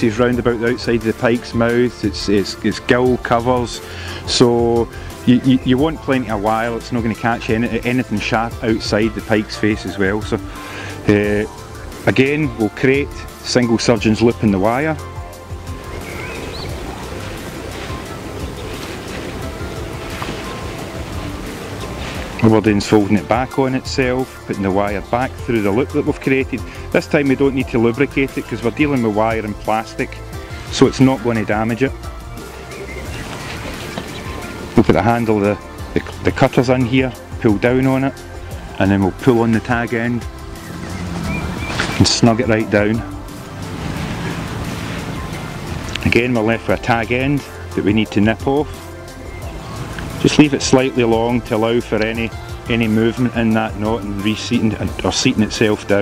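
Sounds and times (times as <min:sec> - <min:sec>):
faint background music: 0:00.0 - 0:56.0
wind: 0:00.0 - 0:56.0
water lapping: 0:00.3 - 0:56.0
wind rushing: 0:40.2 - 0:42.3, 0:43.0 - 0:46.0.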